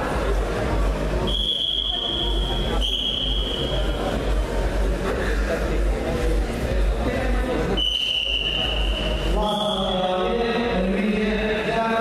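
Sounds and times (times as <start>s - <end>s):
hall hubbub: 0.0s - 12.0s
man's amplified voice calling out: 9.3s - 12.0s.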